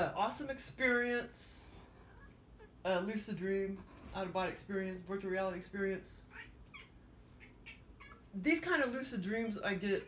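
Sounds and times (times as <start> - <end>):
cat meowing faintly: 6.3 - 8.3.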